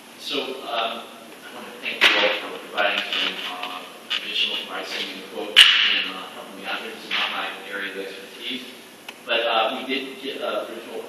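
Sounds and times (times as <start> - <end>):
person speaking in a hall: 0.0 - 11.0.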